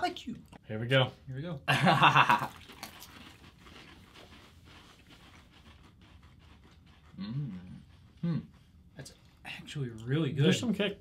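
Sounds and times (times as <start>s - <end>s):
person laughing: 1.7s - 2.6s
crunching and chewing crisps: 2.5s - 6.8s.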